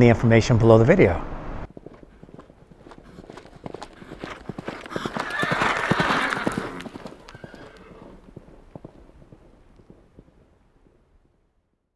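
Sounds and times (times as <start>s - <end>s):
horse hoofbeats: 1.7s - 11.4s
horse whinny: 3.9s - 8.3s.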